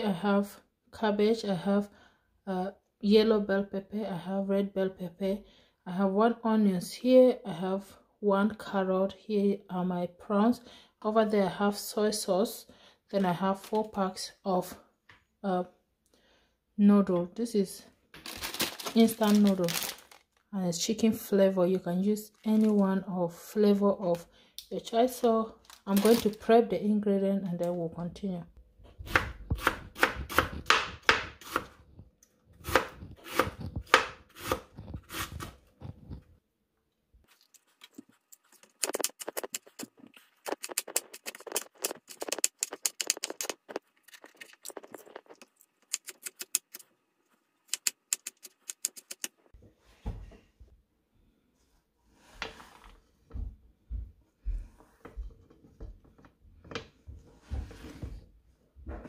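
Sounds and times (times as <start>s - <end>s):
knife cutting vegetables on board: 29.0s - 31.8s, 32.6s - 36.2s, 47.7s - 49.4s.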